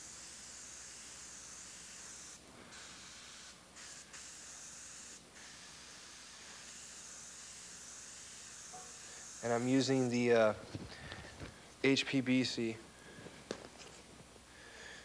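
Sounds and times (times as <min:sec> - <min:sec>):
airbrush spraying hiss: 0:00.0 - 0:12.8.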